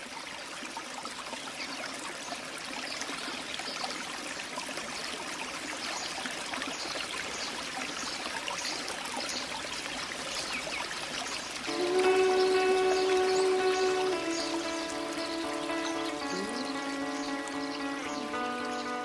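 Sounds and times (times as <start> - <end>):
music with sustained chord: 11.7 - 19.0.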